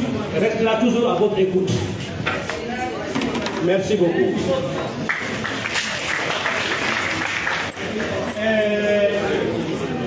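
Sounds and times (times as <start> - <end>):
audience applauding: 5.0 - 8.2.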